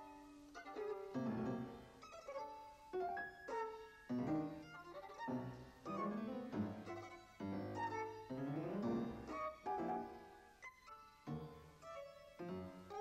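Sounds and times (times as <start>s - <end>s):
violin playing: 0.0s - 13.0s.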